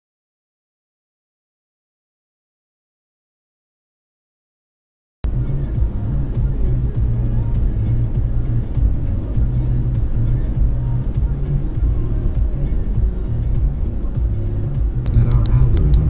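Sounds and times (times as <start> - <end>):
car radio playing: 5.3 - 16.0
car road and engine rumble: 5.3 - 16.0.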